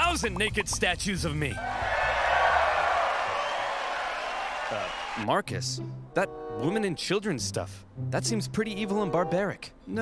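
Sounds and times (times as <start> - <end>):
crowd cheering: 1.5 - 5.3.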